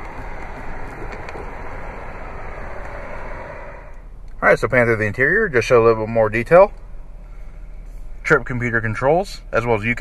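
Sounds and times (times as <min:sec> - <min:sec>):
car cabin rushing noise: 0:00.0 - 0:04.0.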